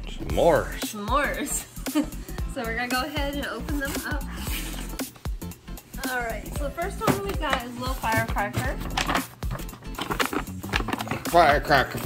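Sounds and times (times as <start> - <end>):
background music: 0.0 - 12.0
tissue paper rustling: 3.7 - 5.2.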